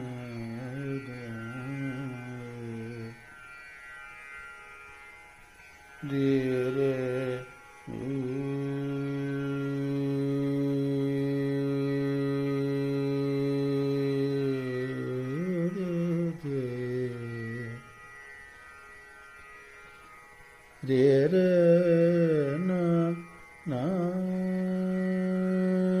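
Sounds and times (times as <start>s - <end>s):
man singing long held notes: 0.0s - 3.2s, 6.0s - 17.9s, 20.8s - 26.0s.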